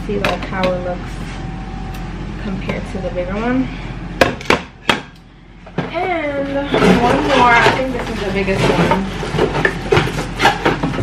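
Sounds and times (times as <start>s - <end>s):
cardboard and plastic rustling: 5.7s - 11.0s.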